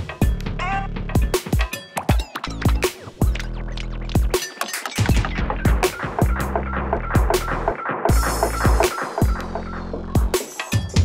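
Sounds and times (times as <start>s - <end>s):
electronic percussion loop with echo: 0.0s - 11.0s.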